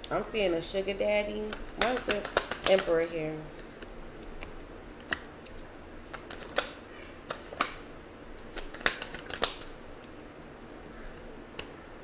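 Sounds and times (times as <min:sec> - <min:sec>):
cards clicking and snapping: 0:01.4 - 0:02.9, 0:03.6 - 0:07.8, 0:08.4 - 0:10.1.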